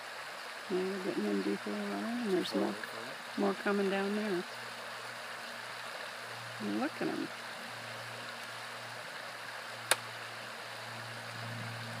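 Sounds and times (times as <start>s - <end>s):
river running over stones: 0.0s - 12.0s.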